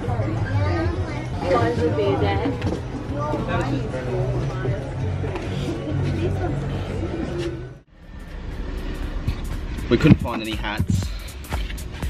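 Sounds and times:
road traffic rumble: 0:00.0 - 0:12.0.

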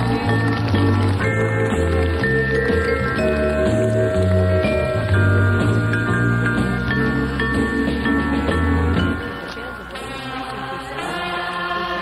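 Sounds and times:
choir-like voices holding chords: 0:08.8 - 0:12.0.

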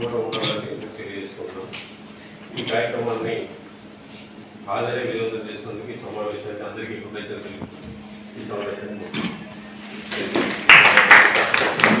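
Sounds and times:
group hand clapping: 0:10.0 - 0:12.0.

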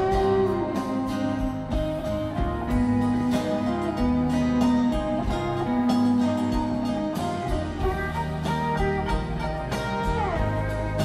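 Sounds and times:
live band playing instrumental: 0:00.0 - 0:11.0.

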